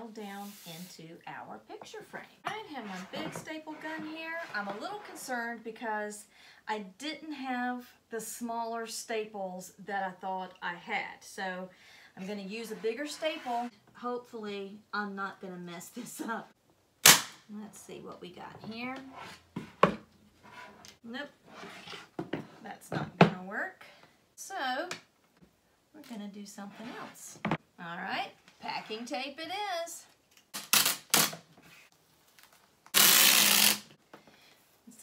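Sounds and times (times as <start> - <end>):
packing tape ripping off dispenser: 30.4 - 31.4, 32.9 - 33.9.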